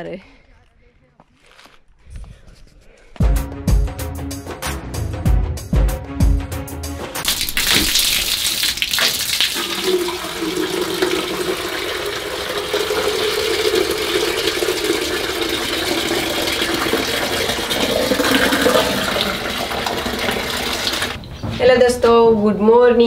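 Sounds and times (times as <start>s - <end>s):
urine splashing on ground: 7.2s - 9.8s
liquid pouring into plastic bucket: 7.2s - 21.2s.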